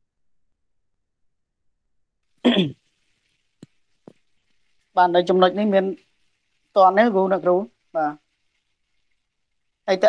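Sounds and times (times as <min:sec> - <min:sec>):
person clearing throat: 0:02.4 - 0:02.8.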